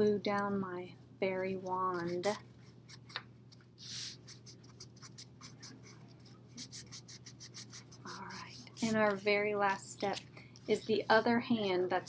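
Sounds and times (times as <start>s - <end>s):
hands rubbing on paper: 3.8s - 9.1s.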